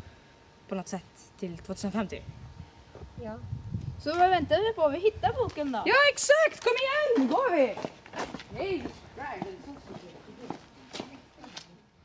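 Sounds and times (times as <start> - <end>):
footsteps on pavement: 5.2 - 11.8.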